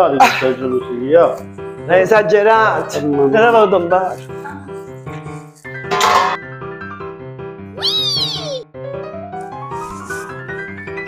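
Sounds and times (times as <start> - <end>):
keyboard-like background music: 0.0 - 11.0.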